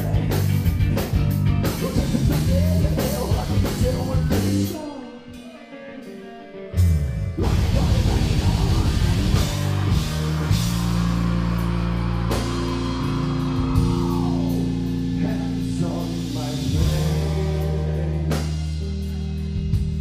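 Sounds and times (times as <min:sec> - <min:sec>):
heavy metal band playing: 0:00.0 - 0:20.0.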